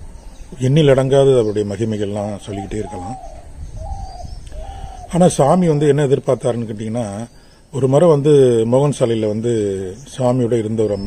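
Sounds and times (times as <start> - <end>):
dove cooing: 0.0 - 5.7.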